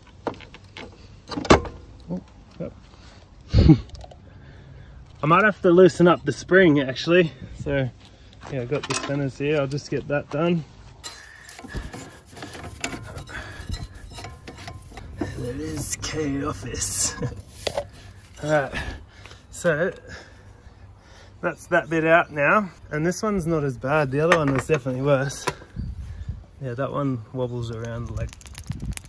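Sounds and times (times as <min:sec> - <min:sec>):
metallic clinks and rattles: 0:12.7 - 0:15.3, 0:27.8 - 0:29.0.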